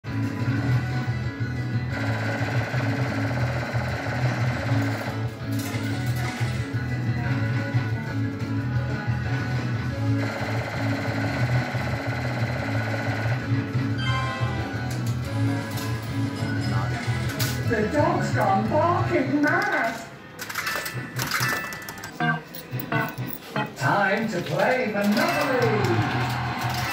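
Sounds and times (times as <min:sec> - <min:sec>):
fruit machine pulsing music: 0:00.1 - 0:19.0, 0:25.2 - 0:26.9.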